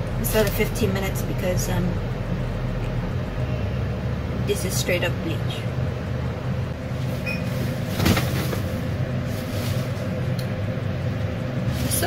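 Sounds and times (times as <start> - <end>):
low background hum: 0.0 - 12.0
plastic cape rustling: 7.6 - 10.2.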